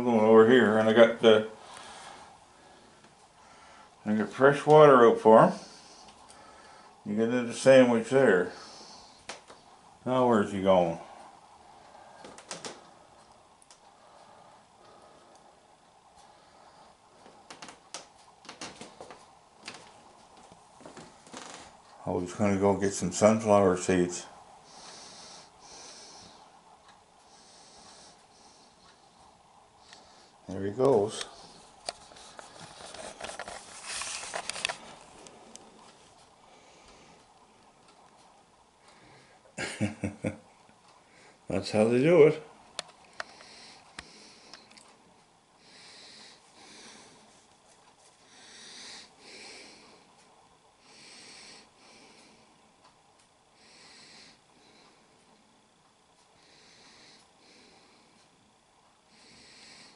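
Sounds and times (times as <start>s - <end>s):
soft breathing: 0.0s - 39.6s, 40.5s - 59.9s
low background hiss: 0.0s - 59.9s.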